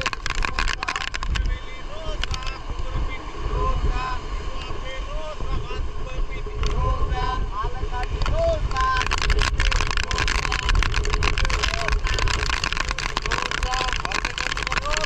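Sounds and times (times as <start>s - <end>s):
wind rumbling on microphone: 0.0s - 15.0s.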